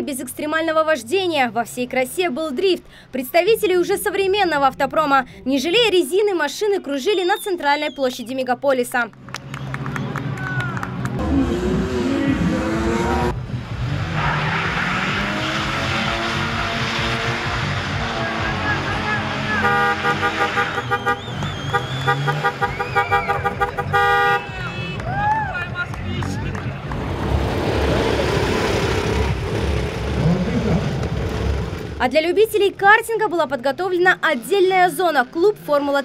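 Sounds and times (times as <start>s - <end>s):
car engines revving: 9.1s - 32.2s
tyres squealing on asphalt: 14.0s - 25.6s
car horn blast: 18.8s - 25.0s.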